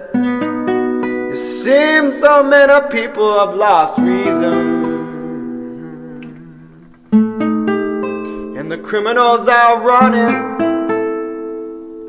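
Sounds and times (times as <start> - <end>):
nylon-string guitar chord ringing: 0.0 - 12.0.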